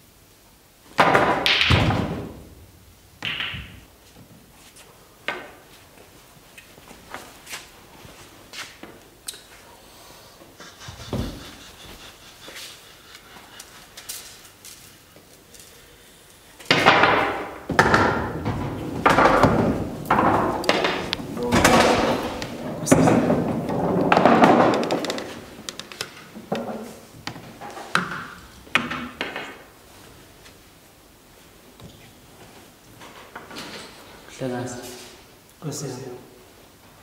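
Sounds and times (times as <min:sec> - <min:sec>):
man laughing loudly: 0:10.6 - 0:14.0.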